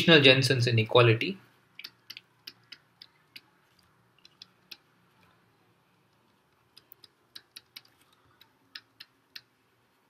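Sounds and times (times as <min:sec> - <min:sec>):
stylus clicking on tablet: 0:01.7 - 0:05.3, 0:06.1 - 0:09.6.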